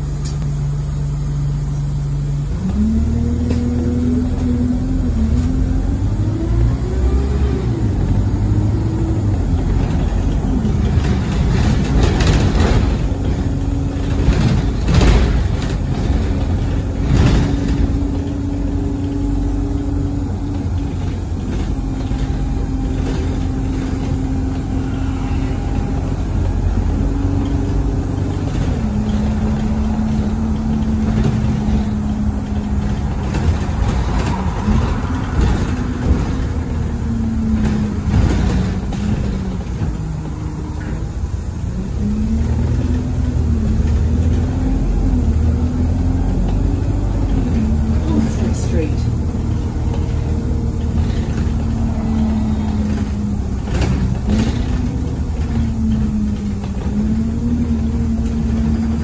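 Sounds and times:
bus engine and road drone: 0.0s - 59.0s
knocks and rattles: 8.0s - 59.0s.

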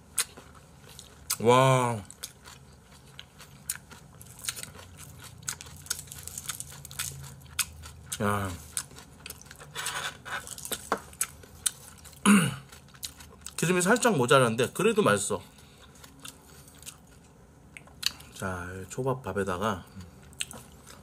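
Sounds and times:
wet chewing and crunching: 0.0s - 14.4s, 15.5s - 18.4s, 20.0s - 21.0s.

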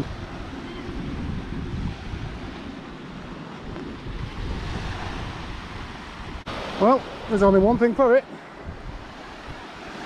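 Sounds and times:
small waves washing onto beach: 0.0s - 10.0s
wind rumbling on microphone: 0.0s - 10.0s.

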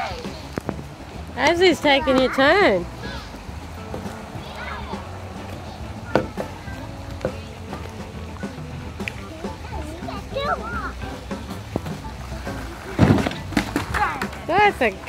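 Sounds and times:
background music: 0.0s - 15.0s
child's voice: 4.4s - 5.0s, 9.2s - 11.2s, 13.9s - 14.3s
skateboard landing thump: 5.5s - 7.8s, 11.1s - 14.6s.

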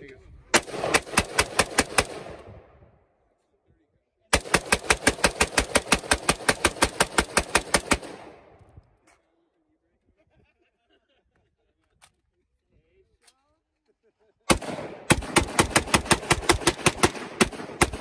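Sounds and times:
rifle firing rapid shots: 0.5s - 2.5s, 4.3s - 8.5s, 14.5s - 18.0s.

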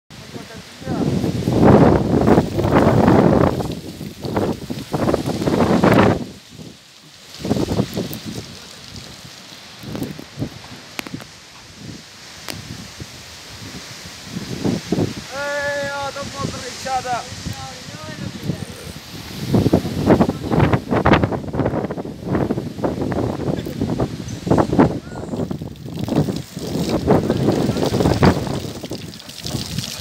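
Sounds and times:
strong wind buffeting microphone: 0.1s - 30.0s.

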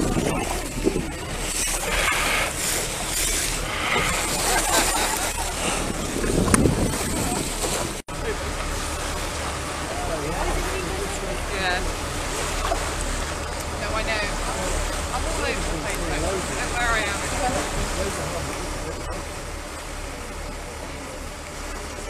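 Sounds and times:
wind on microphone: 0.0s - 8.0s
people talking: 0.0s - 12.6s, 13.7s - 22.0s
boat motor rumble: 0.0s - 22.0s
water hissing: 1.2s - 7.4s.

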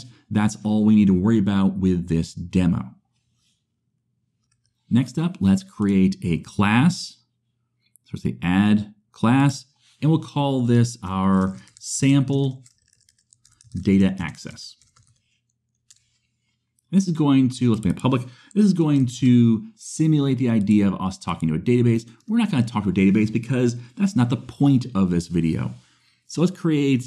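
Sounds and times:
person speaking: 0.0s - 2.9s, 4.9s - 7.2s, 8.0s - 12.8s, 13.5s - 15.0s, 16.9s - 27.0s
faint keyboard or mouse clicks: 11.4s - 11.9s.

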